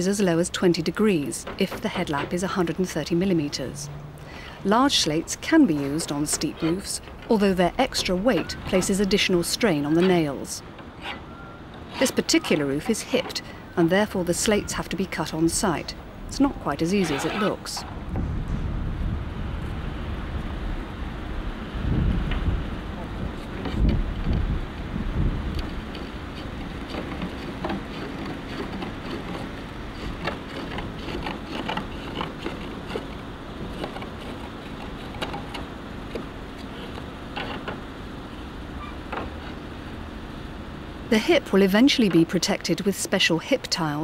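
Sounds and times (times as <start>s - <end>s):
steady outdoor rumble: 0.0s - 44.0s
hammer tapping roof slates: 0.7s - 3.9s, 25.6s - 37.8s.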